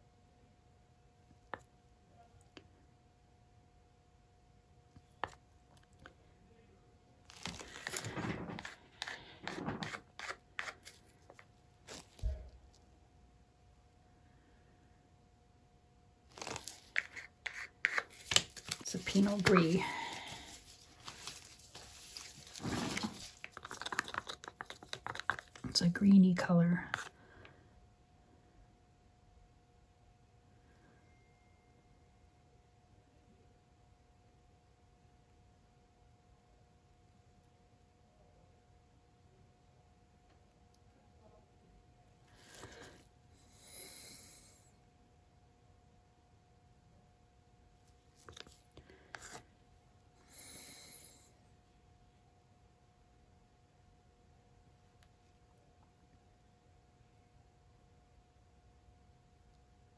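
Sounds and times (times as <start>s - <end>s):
stick scraping wet paint: 7.3s - 12.2s, 16.4s - 25.9s
soft plastic rustle: 7.3s - 12.8s, 16.3s - 26.0s, 47.8s - 49.5s
soft rubbing hiss: 16.4s - 25.9s.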